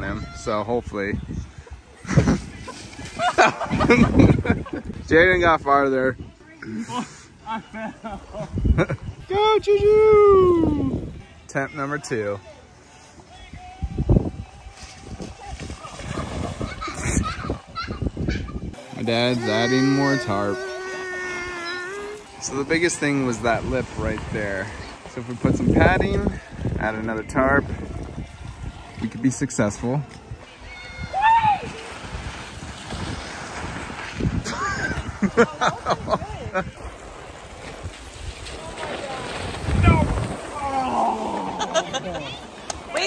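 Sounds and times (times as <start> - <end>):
wind buffeting microphone: 0.0 - 6.4, 13.7 - 18.8, 23.3 - 29.2, 30.2 - 41.7
scuffing sliding and splashing: 14.7 - 17.0, 31.5 - 43.0
voices calling out: 18.8 - 25.2, 38.5 - 43.0.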